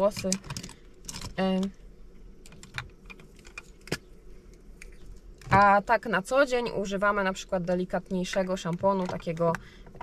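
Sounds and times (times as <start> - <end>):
cosmetic items clicking: 0.0 - 1.7.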